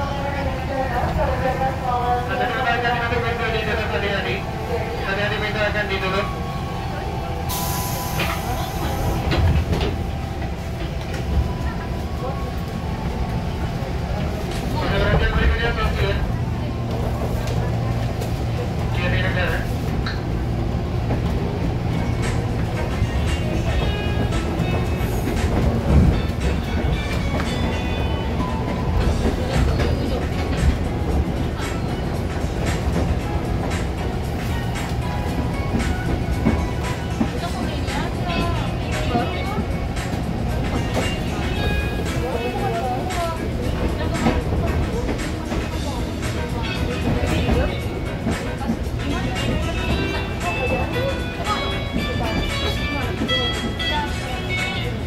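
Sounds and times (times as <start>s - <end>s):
train wheel rumble: 0.0s - 55.0s
voices in train carriage: 0.0s - 55.0s
train door hiss: 7.5s - 9.5s.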